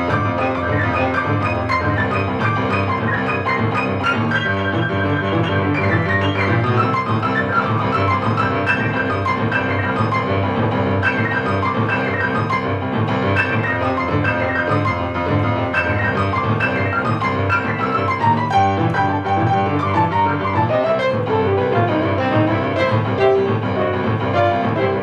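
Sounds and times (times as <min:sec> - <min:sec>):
boogie-woogie piano: 0:00.0 - 0:25.0.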